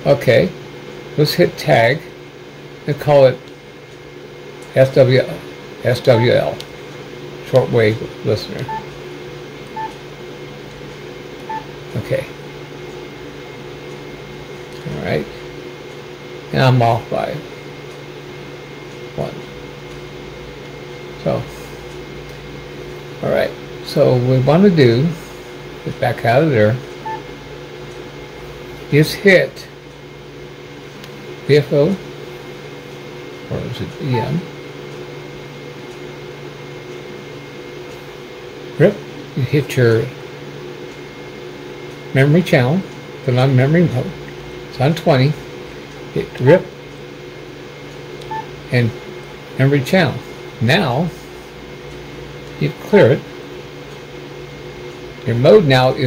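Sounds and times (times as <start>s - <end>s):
low hum with hiss: 0.0s - 56.0s
short high radio beep: 6.1s - 6.4s, 34.1s - 34.4s.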